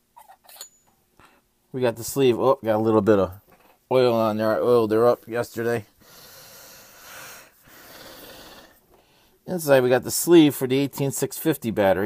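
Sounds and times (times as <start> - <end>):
person breathing: 6.0 - 9.4.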